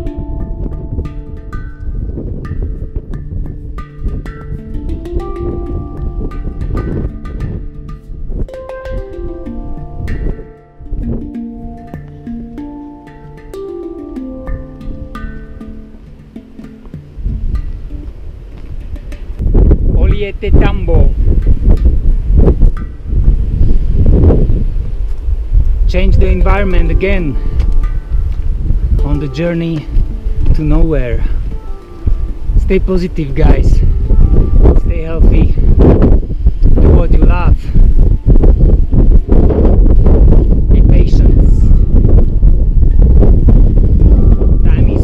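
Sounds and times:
hang drum music: 0.0s - 24.7s, 25.9s - 45.0s
wind buffeting microphone: 0.0s - 45.0s.

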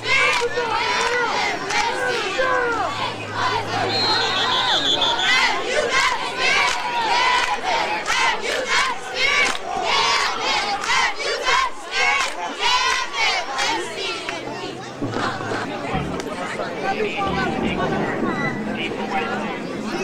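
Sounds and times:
crowd chatter: 0.0s - 20.0s
crowd shouting and cheering: 0.0s - 20.0s.

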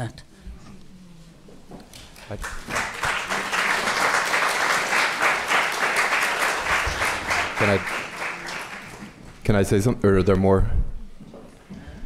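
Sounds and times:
audience applauding: 1.9s - 9.4s.

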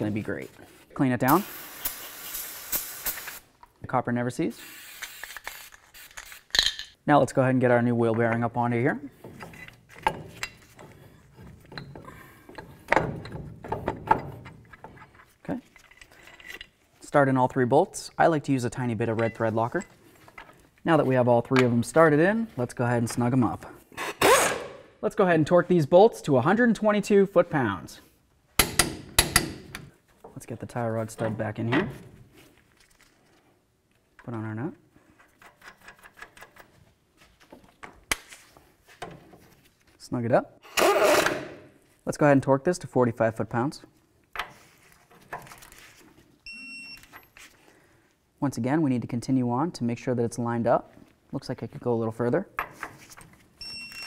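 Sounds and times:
metallic clinks and scrapes: 9.2s - 13.4s, 14.2s - 16.9s
sharp metal knocks: 28.6s - 29.8s.

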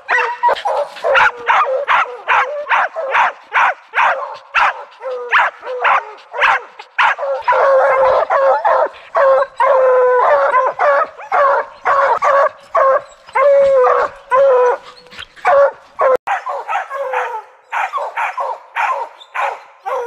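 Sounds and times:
hounds barking and bawling: 0.0s - 20.0s.

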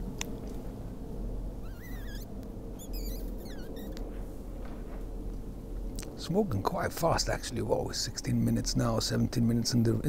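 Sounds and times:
low background hum: 0.0s - 10.0s
small songbird singing: 2.8s - 4.0s.

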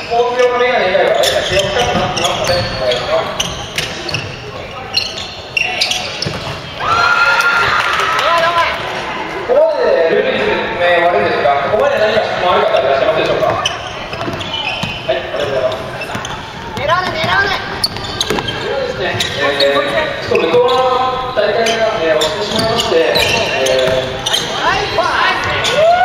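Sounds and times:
voices echoing in hall: 0.0s - 26.0s
basketball bouncing on wooden floor: 1.6s - 2.8s, 6.2s - 6.7s, 13.2s - 15.1s, 16.0s - 19.4s.

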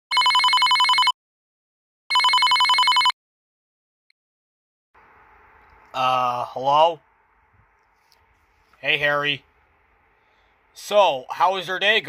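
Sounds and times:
telephone ringing: 0.1s - 1.2s, 2.1s - 3.2s.

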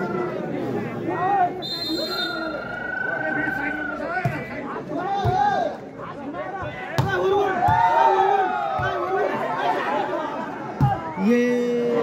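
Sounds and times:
crowd chattering: 0.0s - 12.0s
long steady whistle: 1.6s - 3.0s.

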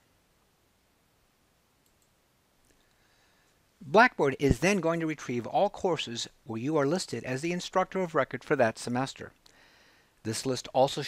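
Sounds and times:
faint computer mouse clicks: 1.8s - 2.9s.

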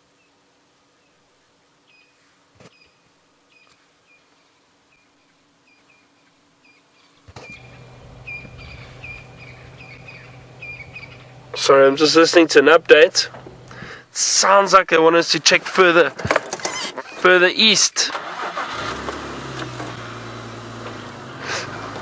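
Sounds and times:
low steady hum: 0.0s - 17.6s
high bird chirps: 5.0s - 11.6s.

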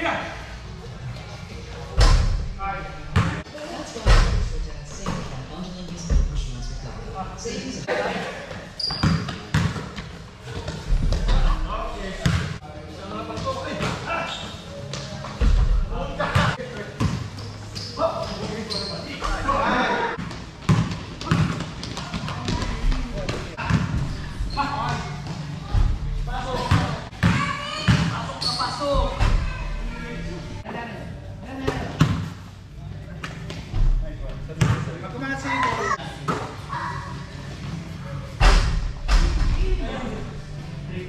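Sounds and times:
basketball bouncing on court floor: 9.0s - 10.0s, 12.2s - 12.6s, 20.2s - 24.0s.

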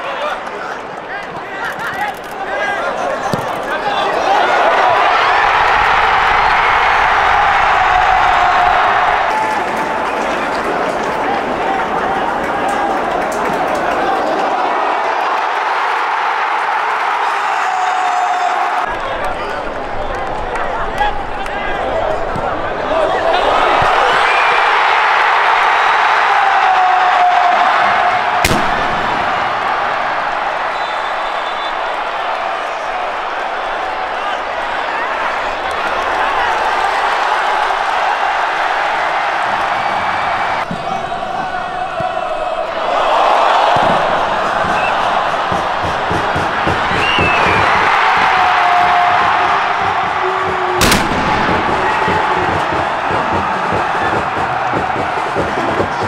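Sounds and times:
stadium crowd cheering: 0.0s - 56.0s
sharp bangs: 28.4s - 32.3s, 43.5s - 55.7s.

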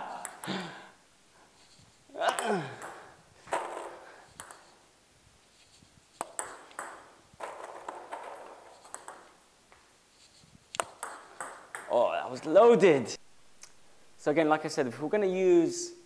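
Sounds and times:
table tennis balls clicking: 0.0s - 0.7s, 1.8s - 4.8s, 6.1s - 9.9s, 10.7s - 12.6s
ball bouncing on table: 0.1s - 0.6s, 2.3s - 4.7s, 6.2s - 9.3s, 10.8s - 12.1s.

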